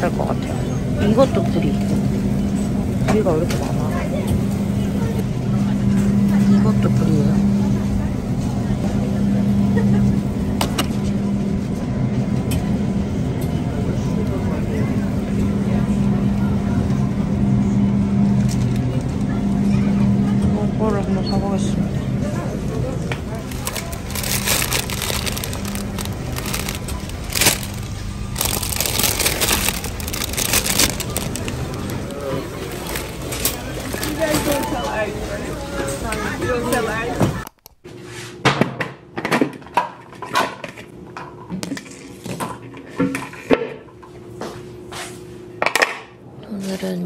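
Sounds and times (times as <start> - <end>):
grocery store ambience: 0.0 - 38.5, 46.2 - 47.0
handling noises: 23.1 - 35.1
lettuce leaves snapping and rustling: 23.4 - 34.7.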